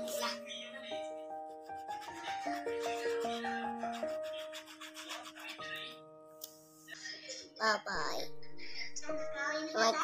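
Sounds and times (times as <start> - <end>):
simple background melody: 0.0 - 10.0
crayon scribbling on paper: 1.4 - 6.0.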